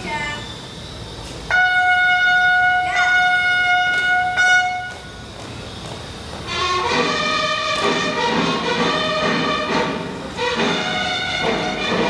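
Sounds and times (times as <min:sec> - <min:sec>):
brass instrument long note: 0:01.5 - 0:05.0, 0:06.5 - 0:12.0.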